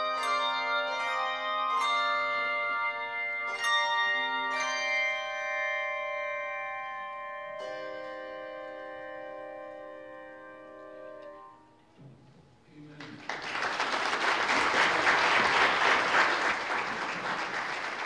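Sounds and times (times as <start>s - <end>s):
handbell choir chords: 0.0s - 11.8s.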